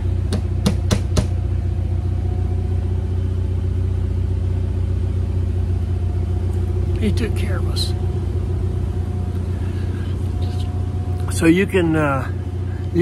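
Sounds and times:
generator drone: 0:00.0 - 0:13.0.

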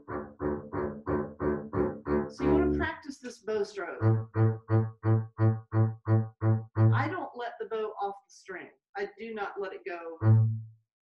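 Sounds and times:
double bass bowed short strokes: 0:00.0 - 0:02.9, 0:04.0 - 0:07.1, 0:10.2 - 0:10.7.

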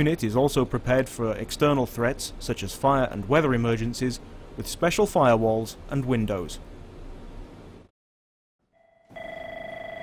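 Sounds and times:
telephone ringing with warbling tone: 0:08.8 - 0:10.0.

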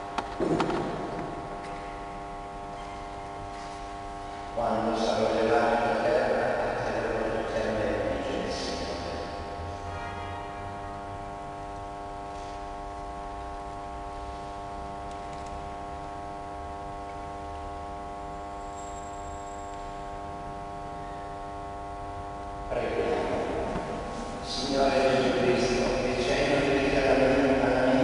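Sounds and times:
person's voice: 0:04.6 - 0:09.2, 0:22.7 - 0:28.0.

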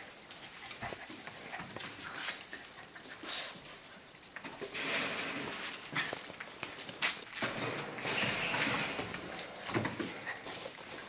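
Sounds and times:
dogs scuffling: 0:00.0 - 0:11.0.

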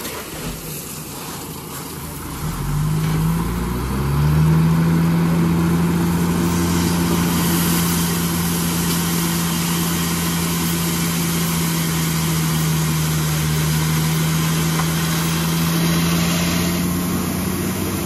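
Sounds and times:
gravel sliding out of truck bed: 0:00.0 - 0:04.4, 0:05.7 - 0:18.0
diesel truck engine humming: 0:00.6 - 0:18.0.

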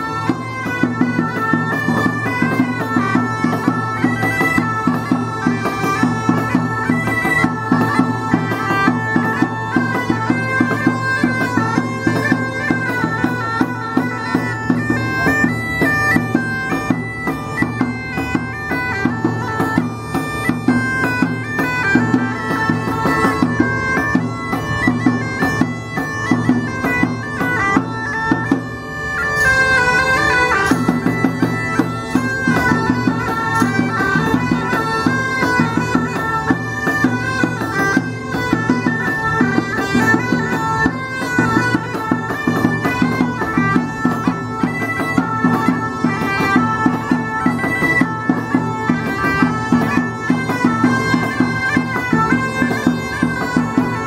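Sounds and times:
bagpipes playing: 0:00.0 - 0:54.0.

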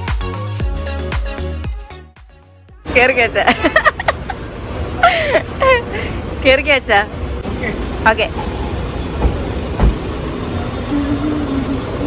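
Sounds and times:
road traffic rumble: 0:02.7 - 0:12.0
people's voices: 0:10.5 - 0:12.0.

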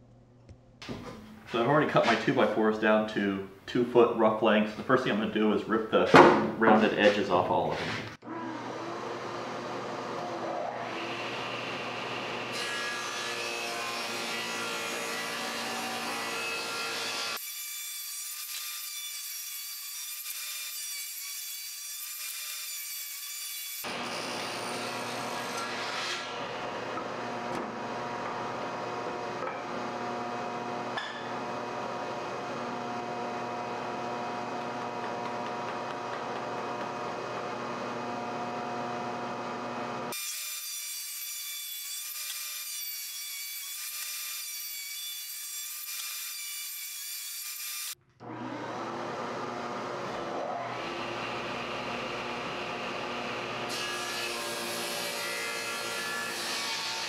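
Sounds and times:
table saw cutting wood: 0:07.9 - 0:57.0.

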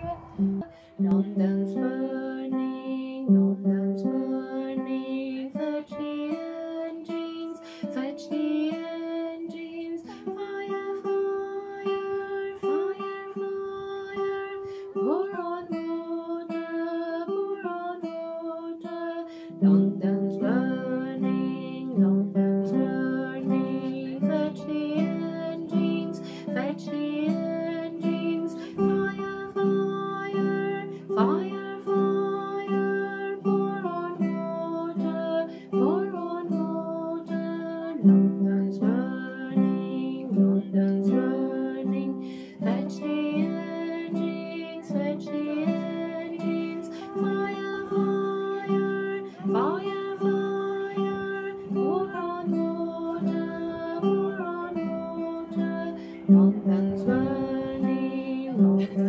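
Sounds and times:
classical guitar playing chords: 0:00.0 - 0:59.0.

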